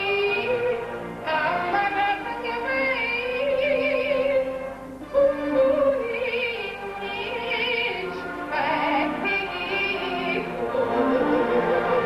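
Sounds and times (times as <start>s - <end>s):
instrumental accompaniment: 0.0s - 12.0s
woman singing with vibrato: 0.0s - 12.0s.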